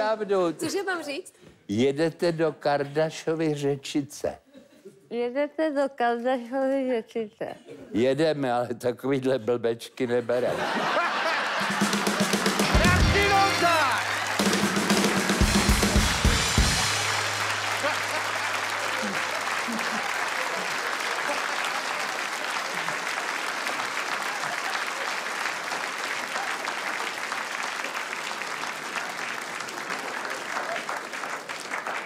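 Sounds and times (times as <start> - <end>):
audience applauding: 10.8 - 32.0
band sting with drums: 11.6 - 18.4.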